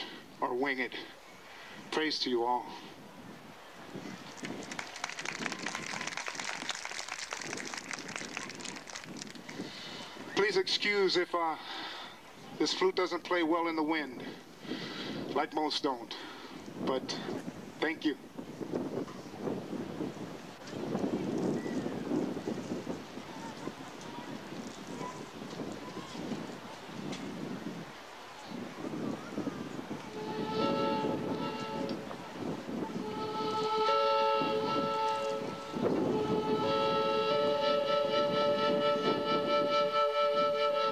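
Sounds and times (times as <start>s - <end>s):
wind buffeting microphone: 2.9s - 10.4s, 14.2s - 15.4s, 16.5s - 40.9s
audience applauding: 4.2s - 9.8s.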